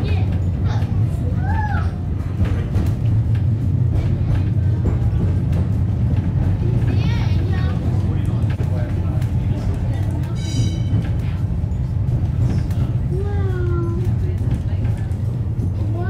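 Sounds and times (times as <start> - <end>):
cable car low rumble: 0.0 - 16.0.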